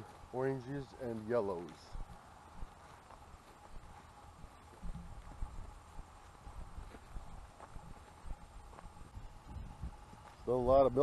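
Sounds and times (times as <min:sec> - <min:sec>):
footsteps on grass: 0:00.0 - 0:11.0.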